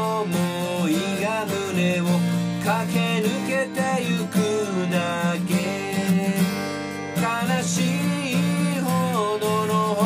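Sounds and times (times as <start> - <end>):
acoustic guitar strumming: 0.0 - 10.0
sliding melody line: 0.0 - 10.0.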